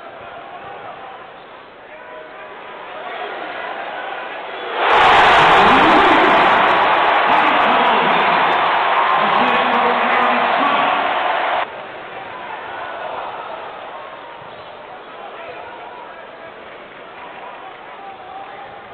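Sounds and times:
arena crowd cheering loudly: 0.0 - 18.9.

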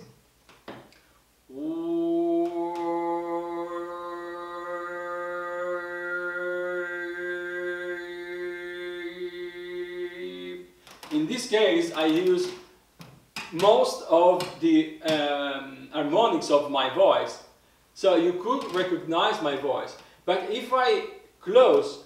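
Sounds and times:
man singing a long drone note: 1.5 - 10.7.

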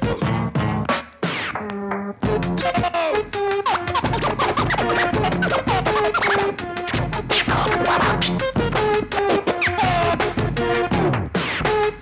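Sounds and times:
musical backing with beat: 0.0 - 12.0
turntable scratching: 0.0 - 12.0.

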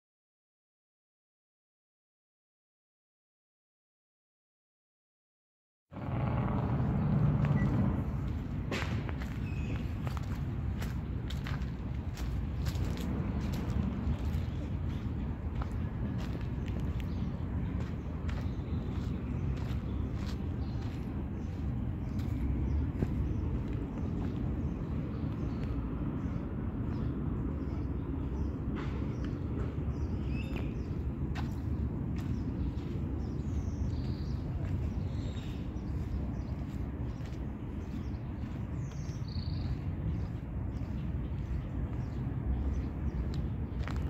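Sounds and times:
wind rumble on microphone: 6.0 - 44.0.

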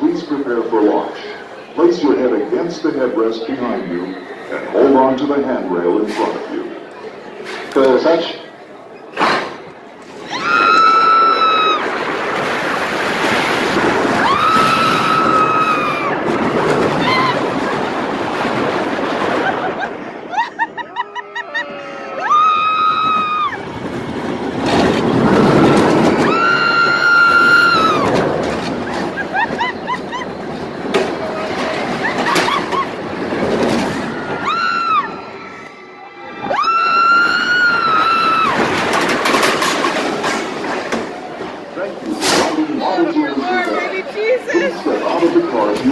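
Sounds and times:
roller coaster train rumbling: 0.0 - 45.9
riders screaming: 10.2 - 12.0, 14.0 - 17.8, 20.4 - 24.0, 25.2 - 30.3, 33.9 - 38.9
rushing wind: 10.2 - 20.8, 22.4 - 41.7.

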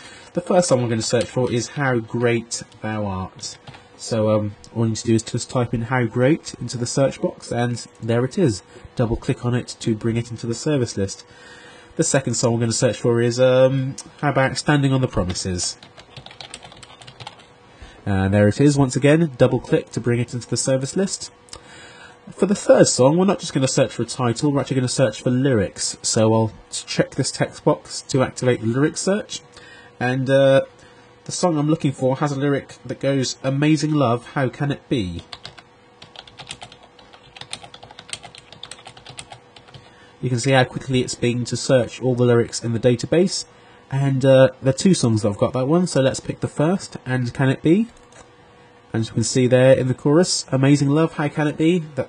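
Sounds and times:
computer keyboard typing: 15.3 - 17.5, 35.3 - 39.9.

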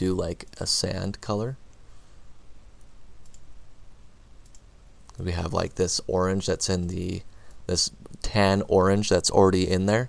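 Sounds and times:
low steady hum: 0.0 - 10.0
faint mouse clicks: 2.8 - 3.5, 4.4 - 5.2, 7.3 - 8.2.

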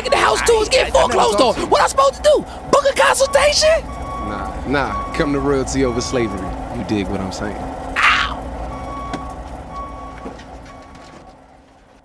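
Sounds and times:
truck reversing alarm beeps: 0.0 - 11.8
low engine rumble: 0.0 - 12.0.

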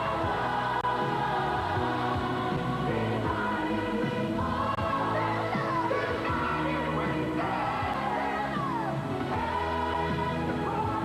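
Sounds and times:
choir singing with instrumental backing: 0.0 - 11.0.

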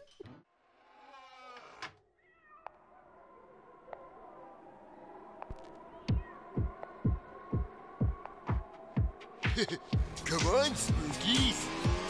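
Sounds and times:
faint cat meow: 0.8 - 4.4, 5.9 - 7.3.

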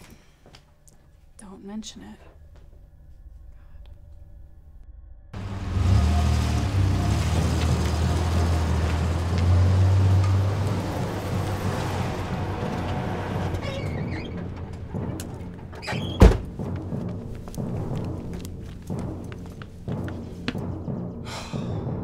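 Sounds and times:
car engine humming: 5.4 - 20.7.

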